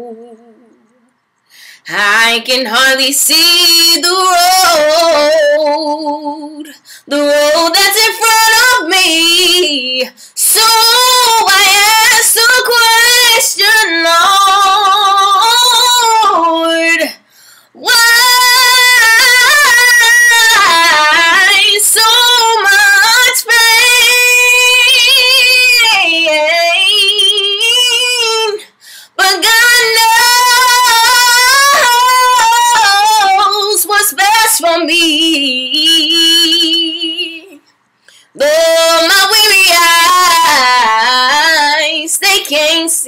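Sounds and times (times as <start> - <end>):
woman singing gospel unaccompanied: 0.0 - 1.0, 1.8 - 43.0.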